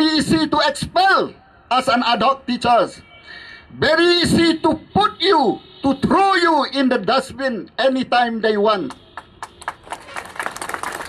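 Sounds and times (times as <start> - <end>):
crowd applauding: 9.2 - 11.0.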